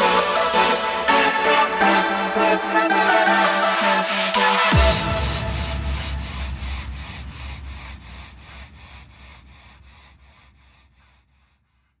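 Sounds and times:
pulsing wash of noise: 0:03.8 - 0:11.2
low bass rumble: 0:04.7 - 0:11.5.

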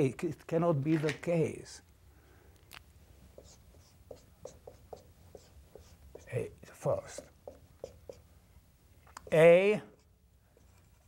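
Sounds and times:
marker pen writing on whiteboard: 0:03.3 - 0:08.4, 0:09.1 - 0:11.0.

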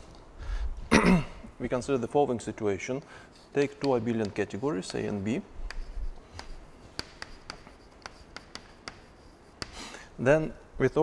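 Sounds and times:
chalk tapping and scraping on blackboard: 0:03.0 - 0:10.0.

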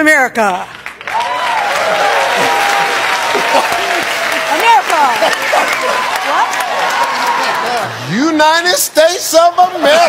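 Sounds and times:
audience applauding: 0:00.8 - 0:08.0
audience laughing: 0:02.4 - 0:06.1.

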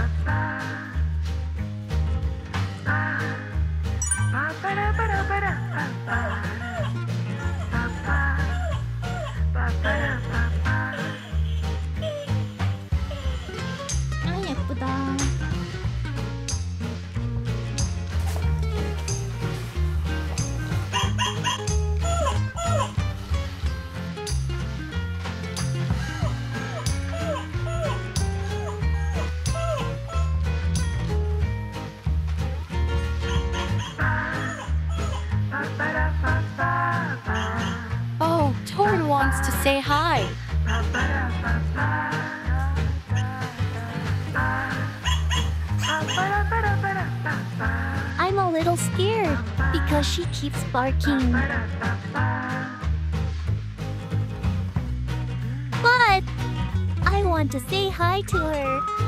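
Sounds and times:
music with bass beat: 0:00.0 - 0:59.0
small dog yapping: 0:20.9 - 0:23.0, 0:26.2 - 0:30.4, 0:45.0 - 0:46.4.

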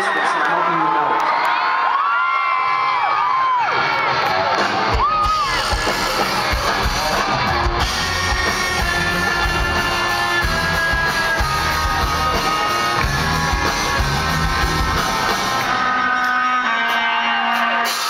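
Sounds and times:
crowd cheering and screaming: 0:00.0 - 0:18.0
rock band playing: 0:02.7 - 0:18.0.

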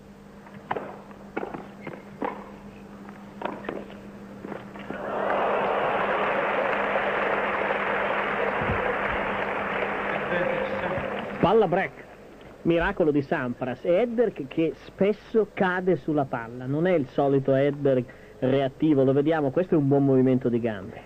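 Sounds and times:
racket hitting tennis ball: 0:00.7 - 0:02.6, 0:03.4 - 0:03.9
crowd applauding: 0:04.9 - 0:11.7.

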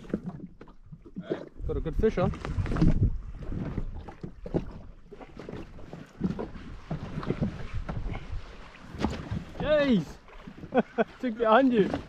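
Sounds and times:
water slapping against hull: 0:00.0 - 0:12.0
wind buffeting microphone: 0:00.0 - 0:12.0.

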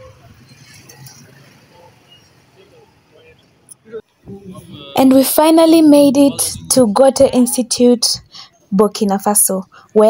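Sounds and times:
motorbike and scooter engines: 0:00.0 - 0:03.7
distant voices: 0:00.0 - 0:08.5.

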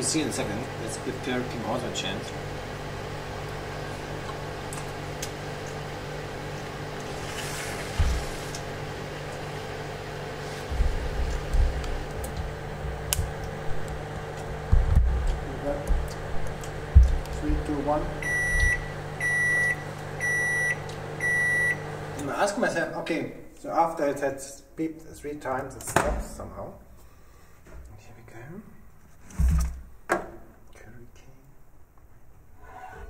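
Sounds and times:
microwave oven humming: 0:00.0 - 0:22.8
microwave beeps: 0:18.2 - 0:22.0.

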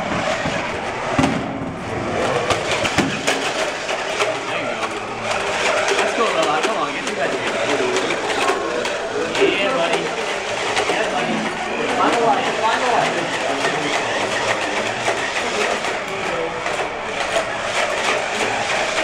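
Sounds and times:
indistinct chatter: 0:00.0 - 0:19.0
robot motors whirring: 0:00.0 - 0:19.0.

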